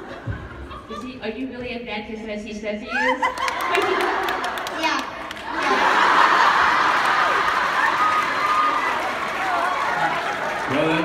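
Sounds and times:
audience laughter: 0.0s - 1.2s, 3.2s - 4.8s, 5.4s - 7.4s.

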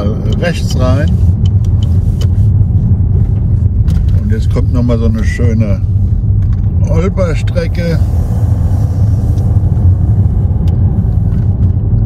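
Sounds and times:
deep rumble of tyres and engine: 0.0s - 12.0s.

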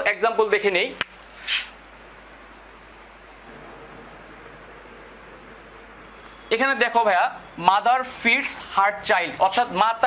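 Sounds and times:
marker writing on whiteboard: 1.4s - 7.0s.

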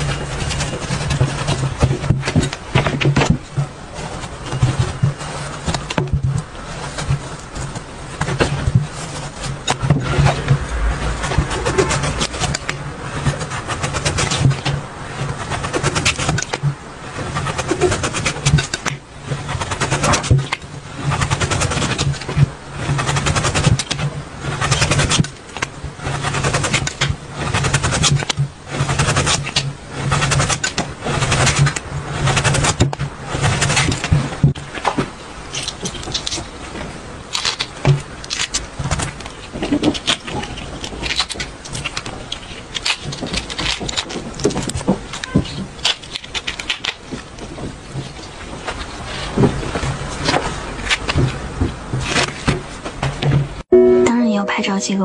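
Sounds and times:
radish slices crackling and tapping: 32.4s - 53.3s.

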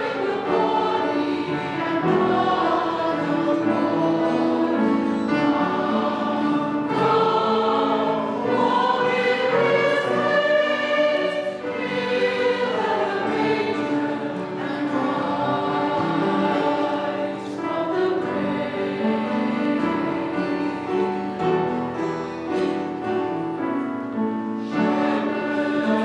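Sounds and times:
choir singing a hymn: 0.0s - 26.0s
guitars: 0.0s - 26.0s
piano: 0.0s - 26.0s.

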